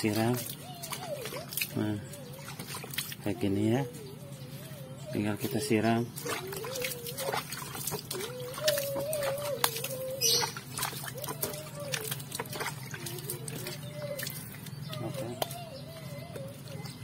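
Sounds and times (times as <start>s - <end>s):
water splashing onto soil: 0.0s - 3.5s, 6.0s - 15.7s.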